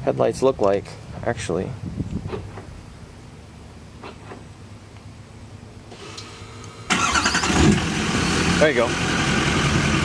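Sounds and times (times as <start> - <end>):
diesel engine starting loudly: 6.0 - 10.0.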